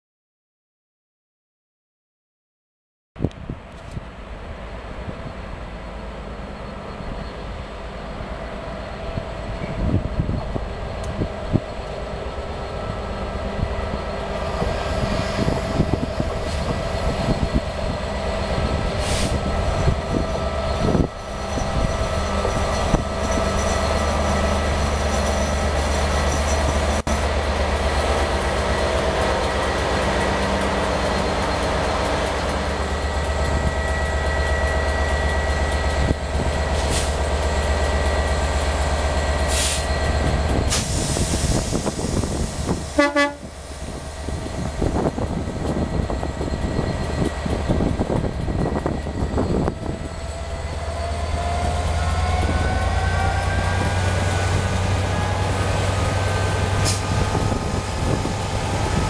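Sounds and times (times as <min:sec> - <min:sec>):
diesel locomotive engine hum: 0:03.2 - 0:59.0
train wheels on rail: 0:03.2 - 0:59.0.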